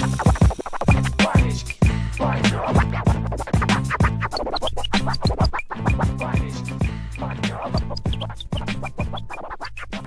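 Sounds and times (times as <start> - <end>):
hip-hop beat with bass line: 0.0 - 10.0
turntable scratching: 0.0 - 10.0.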